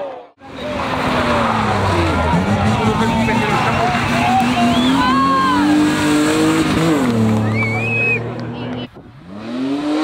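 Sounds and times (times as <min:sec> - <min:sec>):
car engine at high revs: 0:00.6 - 0:10.0.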